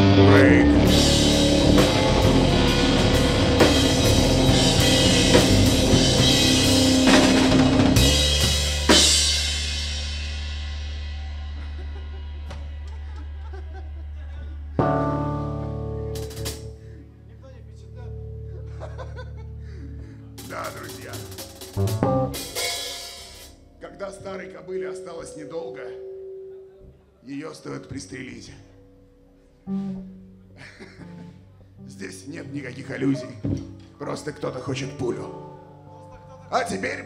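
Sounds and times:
guitar chord ringing: 0.0 - 10.8, 14.8 - 20.4, 21.9 - 31.3
rock band playing heavy riff: 0.0 - 13.2, 14.8 - 16.7, 20.4 - 23.6
low amp drone: 0.0 - 17.0.

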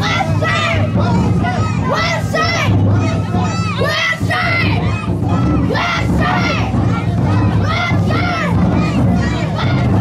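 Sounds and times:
children shouting calls: 0.0 - 10.0.

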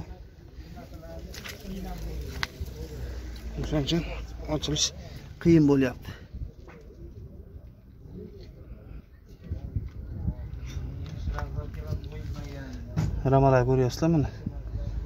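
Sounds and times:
wind on microphone: 9.3 - 12.3.

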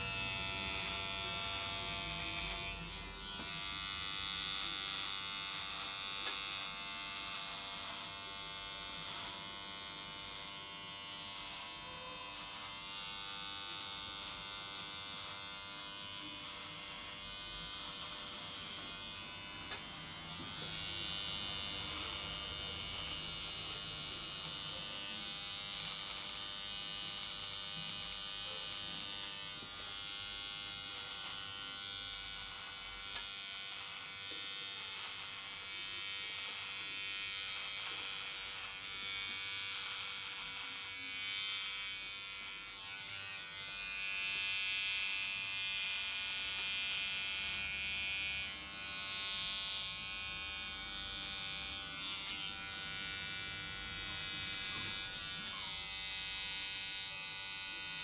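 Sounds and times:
electric beard trimmer buzzing: 0.0 - 58.0.

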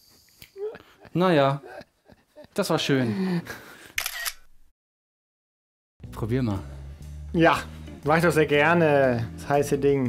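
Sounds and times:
camera shutter click: 4.0 - 4.5.

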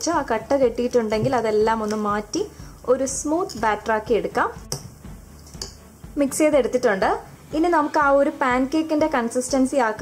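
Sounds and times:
woman's voice: 0.0 - 4.7, 6.2 - 10.0
spoon stirring batter in glass bowl: 1.0 - 5.9.

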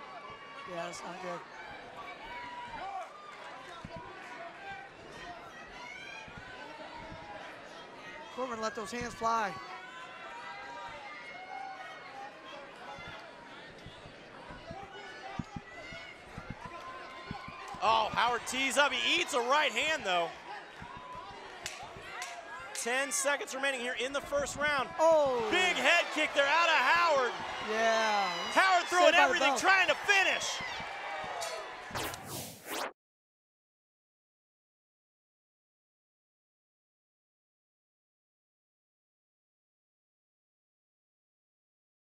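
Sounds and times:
crowd shouting: 0.0 - 31.9
fight arena ambience: 0.0 - 32.8.

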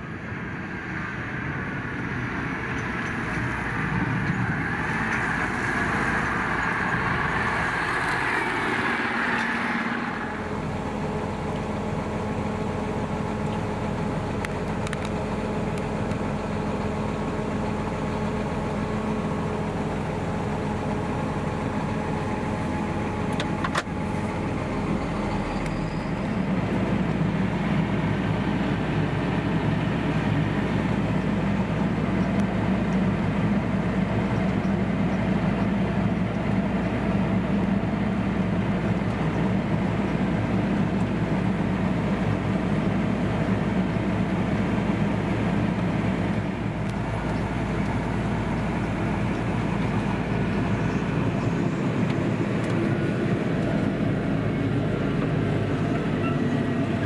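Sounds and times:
tractor engine droning: 0.0 - 57.0.

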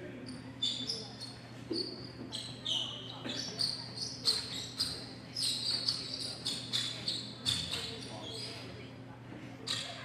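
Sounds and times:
shoes squeaking on court floor: 0.2 - 8.8.

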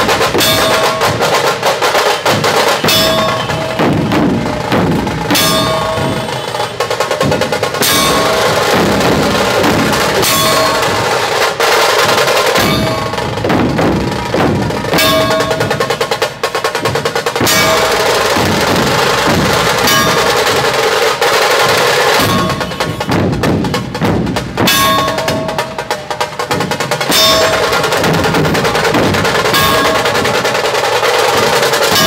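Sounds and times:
group of drums beaten fast: 0.0 - 32.0.

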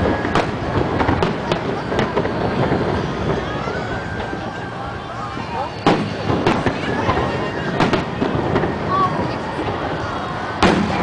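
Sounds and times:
fireworks bangs: 0.0 - 11.0.

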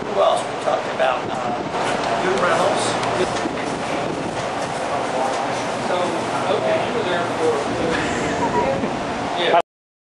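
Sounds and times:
steady background noise: 0.0 - 9.6.

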